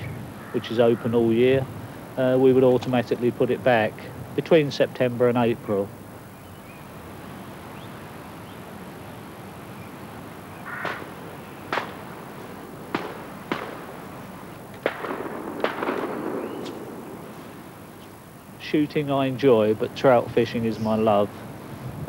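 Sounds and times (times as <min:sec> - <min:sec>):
steady hiss: 0:00.0 - 0:22.0.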